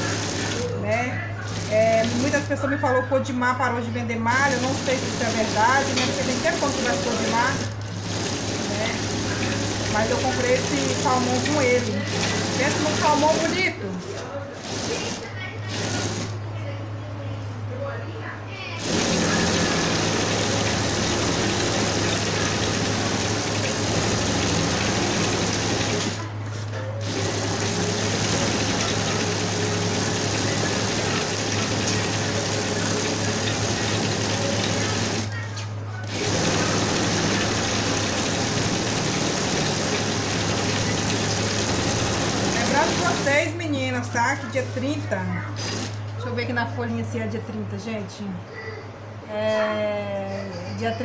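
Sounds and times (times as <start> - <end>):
sewing machine stitching: 0.0 - 0.8, 1.4 - 2.5, 4.3 - 16.4, 18.8 - 35.4, 36.0 - 43.6, 45.6 - 46.1
low motor hum: 18.7 - 43.4.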